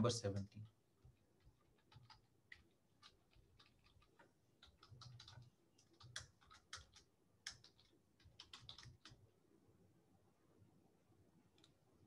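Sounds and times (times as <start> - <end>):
typing on computer keyboard: 0.4 - 9.2, 11.6 - 11.8.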